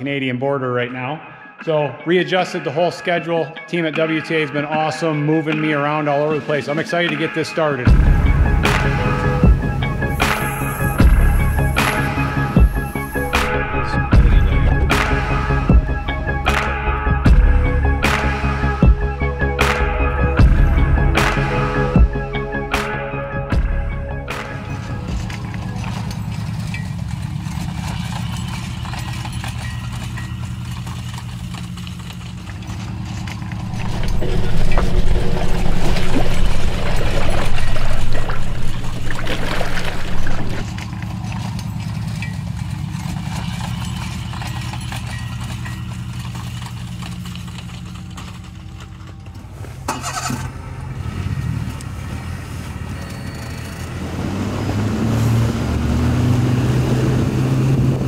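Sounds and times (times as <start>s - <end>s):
outboard motor running: 7.9s - 22.8s, 23.4s - 49.3s
rushing noise: 33.5s - 40.6s.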